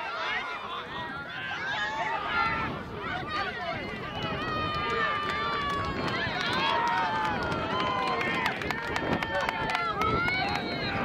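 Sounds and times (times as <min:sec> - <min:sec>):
voices shouting outdoors: 0:00.0 - 0:11.0.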